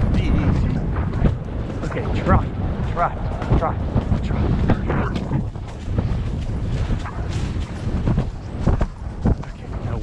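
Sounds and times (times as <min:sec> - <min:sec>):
irregular thuds: 0:00.0 - 0:10.0
wind rumbling on microphone: 0:00.0 - 0:10.0.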